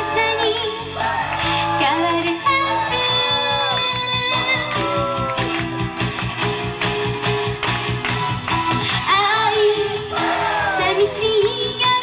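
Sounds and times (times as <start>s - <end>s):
woman singing into microphone: 0.0s - 4.9s, 9.0s - 12.0s
backing music with steady beat: 0.0s - 12.0s.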